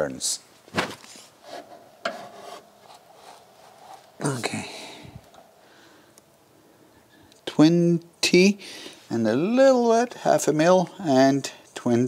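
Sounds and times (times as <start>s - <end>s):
spanner scraping on metal: 1.4s - 4.0s.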